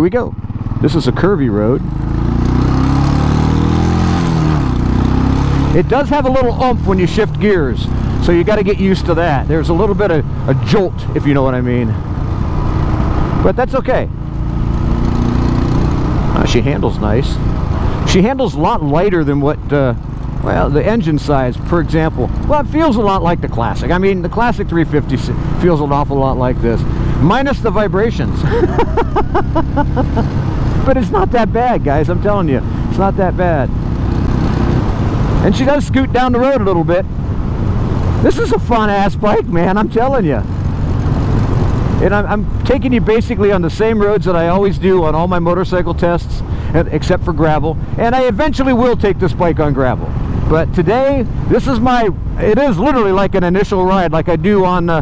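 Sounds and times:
motorcycle engine running: 0:00.0 - 0:55.0
man laughing: 0:28.2 - 0:31.5
wind rushing over microphone: 0:33.6 - 0:43.7.

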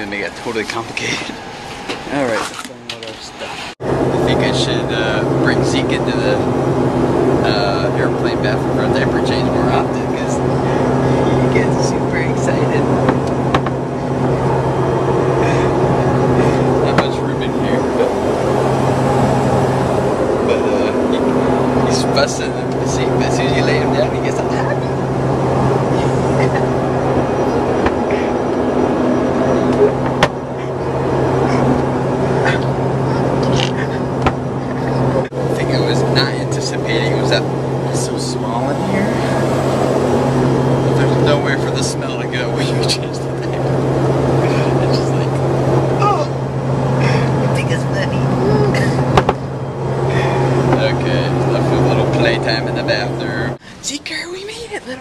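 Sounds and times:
airliner cabin drone: 0:00.0 - 0:55.0.

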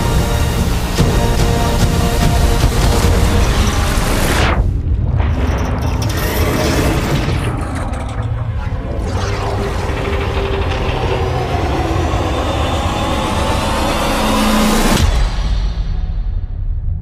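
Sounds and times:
rising whine: 0:00.0 - 0:15.4
low rumble: 0:00.0 - 0:17.0
trailer music and sound effects: 0:00.0 - 0:17.0.

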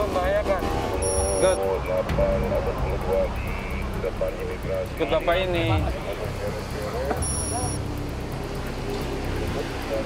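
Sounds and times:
men talking indistinctly: 0:00.0 - 0:08.2, 0:08.9 - 0:10.0
low engine or traffic rumble: 0:00.0 - 0:10.0.

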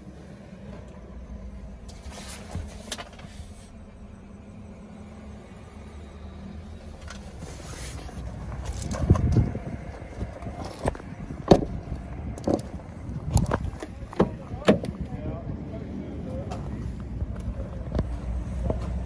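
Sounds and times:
low steady rumble: 0:00.0 - 0:19.0.

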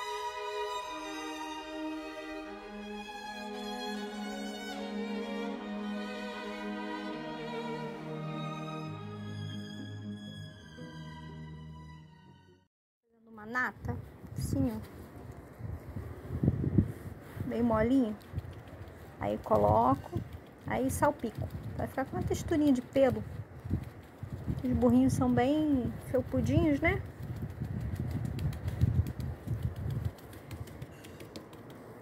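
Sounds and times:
fingers patting wet cement: 0:17.9 - 0:25.1, 0:26.2 - 0:32.0.

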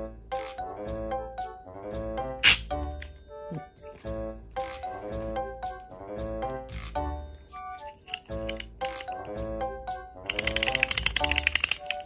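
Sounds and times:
background music: 0:00.0 - 0:12.0
rapid typing clicks: 0:10.3 - 0:12.0.

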